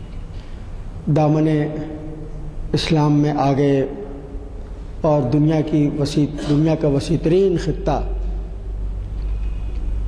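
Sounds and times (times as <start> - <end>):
low room noise hum: 0.0 - 10.0.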